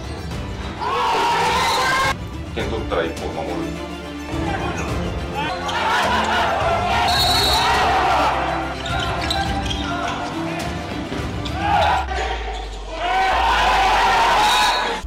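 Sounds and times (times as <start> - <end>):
background music: 0.0 - 15.0
players shouting: 0.8 - 2.1, 4.3 - 15.0.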